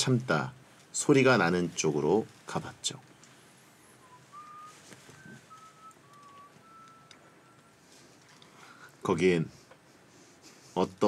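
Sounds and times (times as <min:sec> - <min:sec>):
person whistling faintly: 0:03.8 - 0:08.1.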